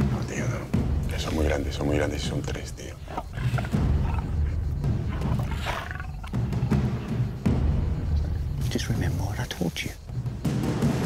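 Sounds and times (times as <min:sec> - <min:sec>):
lion growling: 0:00.0 - 0:09.2
dramatic background music: 0:00.0 - 0:11.0.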